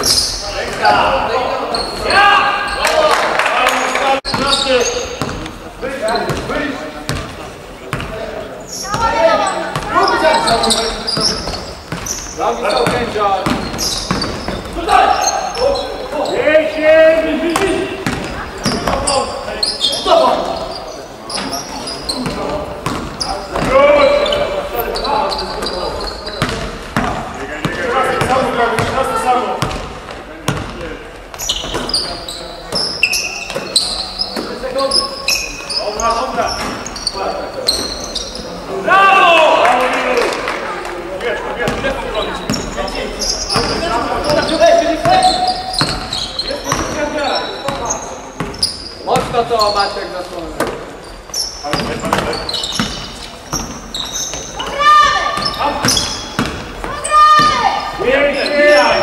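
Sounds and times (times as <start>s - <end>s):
players calling out: 0.0s - 59.0s.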